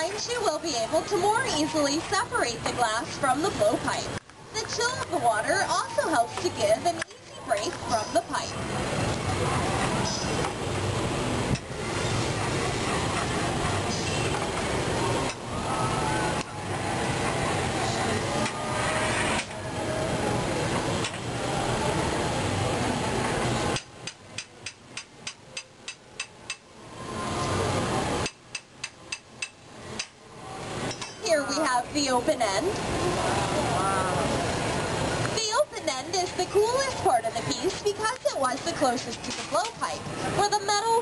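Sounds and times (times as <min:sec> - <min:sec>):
loud steady rushing noise: 0:00.0 - 0:41.0.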